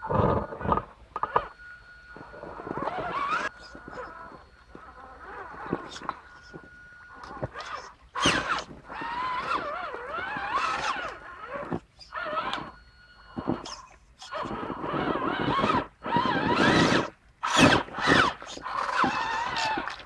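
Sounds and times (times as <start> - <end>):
toy truck electric motor whining: 0.3 - 20.0.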